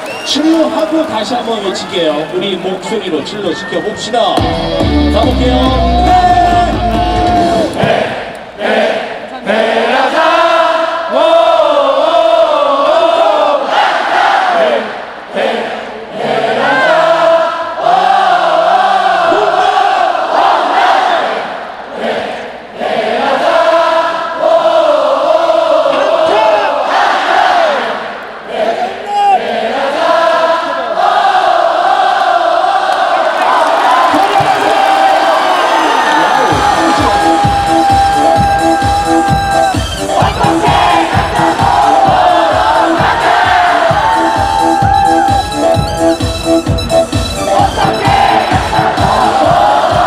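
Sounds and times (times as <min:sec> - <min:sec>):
dance music with thumping beat: 0:04.4 - 0:08.0, 0:36.5 - 0:50.0
crowd chanting a cheer song: 0:06.0 - 0:46.1, 0:47.3 - 0:50.0.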